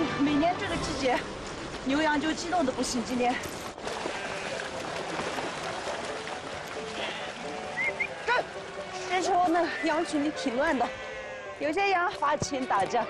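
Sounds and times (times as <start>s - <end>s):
background music: 0.0s - 13.0s
hooves splashing through water: 0.0s - 13.0s
sheep bleating: 4.1s - 4.6s, 6.9s - 8.4s, 9.0s - 11.8s.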